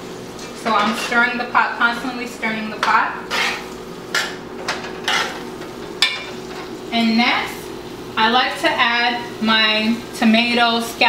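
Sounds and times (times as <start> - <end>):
metal spoon scraping a pot: 5.0 - 5.4.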